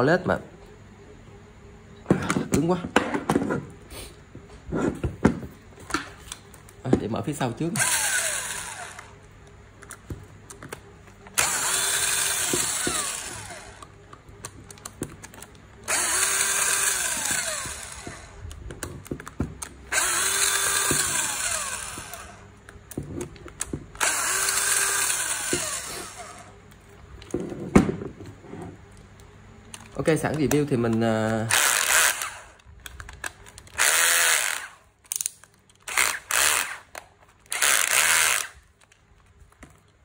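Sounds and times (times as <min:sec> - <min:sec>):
electric screwdriver running: 0:07.8 - 0:09.2, 0:11.4 - 0:13.9, 0:15.8 - 0:18.5, 0:19.9 - 0:22.4, 0:24.0 - 0:26.5, 0:31.4 - 0:32.6, 0:33.6 - 0:34.8, 0:35.8 - 0:36.9, 0:37.5 - 0:38.6.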